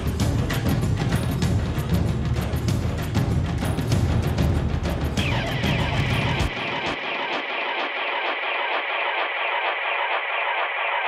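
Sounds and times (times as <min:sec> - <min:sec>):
runway music with a beat: 0:00.0 - 0:11.0.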